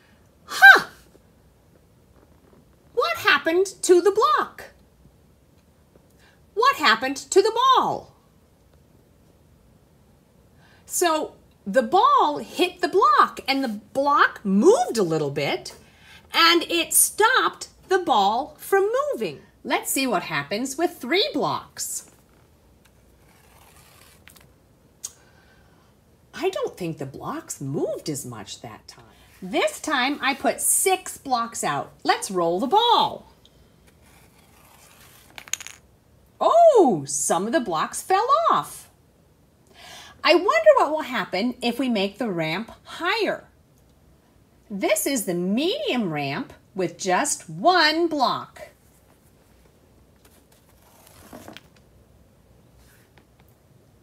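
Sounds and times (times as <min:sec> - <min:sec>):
short scrape: 0:23.2 - 0:24.4
ball rolling down cardboard ramp: 0:34.1 - 0:35.8
ball tapping wooden blocks: 0:35.4 - 0:35.8.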